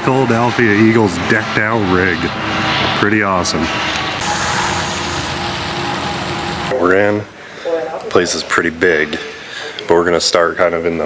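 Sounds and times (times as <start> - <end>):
engine humming: 0.0 - 7.6.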